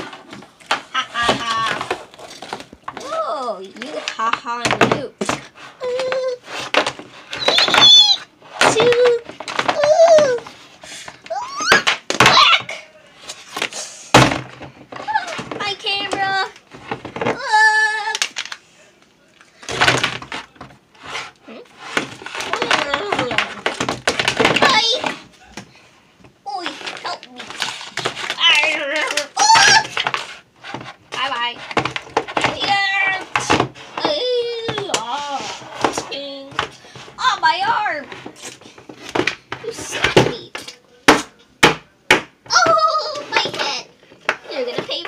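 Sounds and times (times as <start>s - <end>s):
plastic toys clattering on desk: 19.4s - 25.3s, 26.6s - 45.0s.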